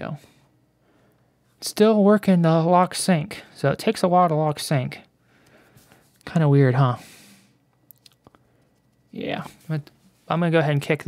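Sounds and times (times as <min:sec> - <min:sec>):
short breath: 0:05.2 - 0:06.2, 0:07.0 - 0:07.6.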